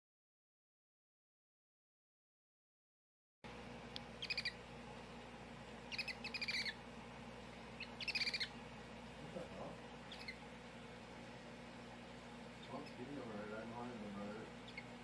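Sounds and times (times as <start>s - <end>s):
low steady hum: 3.5s - 15.0s
baby hedgehog squeaking: 4.2s - 4.6s, 5.9s - 6.8s, 7.8s - 8.6s, 10.0s - 10.4s, 12.6s - 13.1s, 14.6s - 15.0s.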